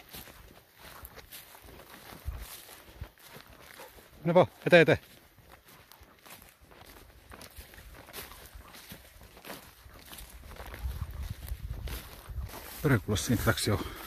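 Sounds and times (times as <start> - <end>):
footsteps through grass: 0.0 - 14.0.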